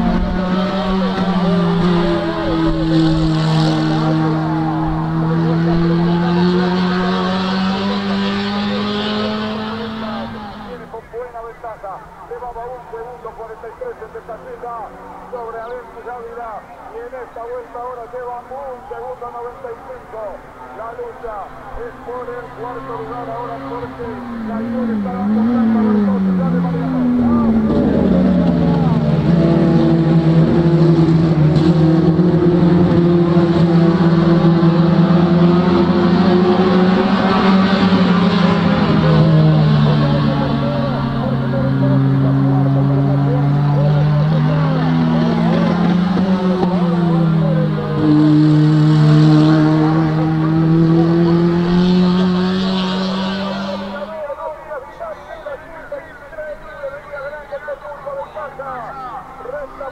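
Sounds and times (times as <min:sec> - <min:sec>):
people talking: 0:00.0 - 0:03.2, 0:07.7 - 0:29.5, 0:35.4 - 0:48.0, 0:51.2 - 0:59.9
racing car engines running hard: 0:00.0 - 0:59.9.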